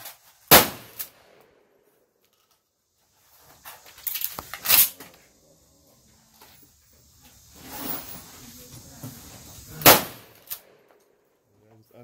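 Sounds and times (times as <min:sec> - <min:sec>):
shotgun shot: 0:00.5 - 0:01.4, 0:09.8 - 0:10.8.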